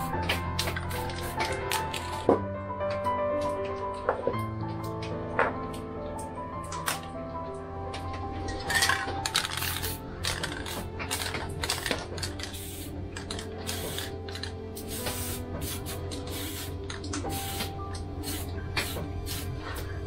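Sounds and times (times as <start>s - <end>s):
background music: 0.0s - 20.0s
aerosol spray can bursts: 0.6s - 2.2s, 12.5s - 12.9s, 13.7s - 14.2s, 14.8s - 19.5s.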